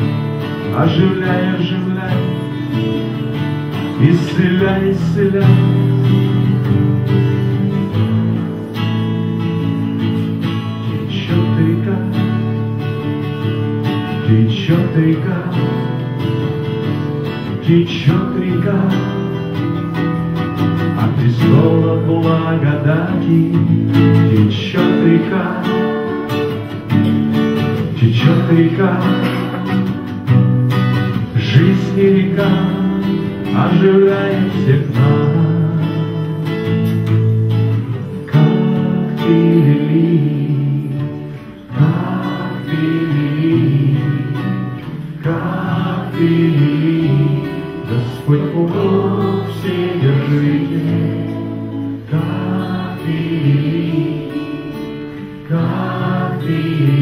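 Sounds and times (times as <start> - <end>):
man singing into a microphone: 0.0 - 8.7, 10.5 - 26.6, 27.6 - 30.1, 31.2 - 57.0
acoustic guitars strumming: 0.0 - 57.0.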